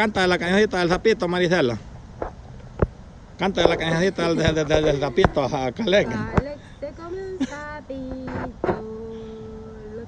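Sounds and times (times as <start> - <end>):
woman singing long held notes: 6.1 - 10.0.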